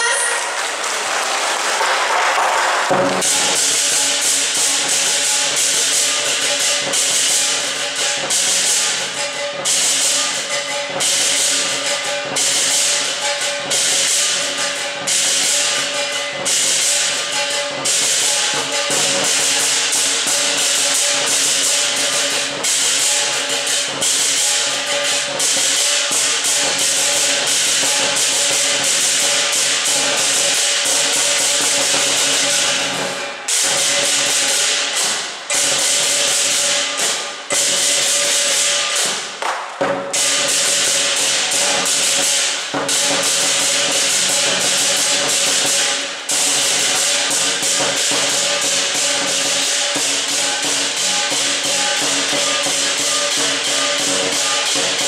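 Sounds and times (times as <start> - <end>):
large drum beaten rapidly: 2.8 - 55.0
clashing cymbals: 2.9 - 55.0.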